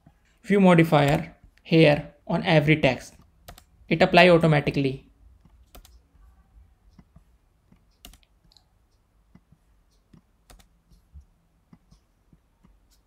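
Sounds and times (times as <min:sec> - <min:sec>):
computer keyboard key clicks: 0:05.6 - 0:06.0, 0:10.5 - 0:10.7.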